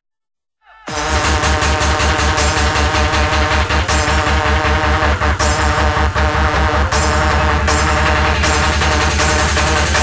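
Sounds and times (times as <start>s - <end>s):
electronic dance music: 0.7s - 10.0s.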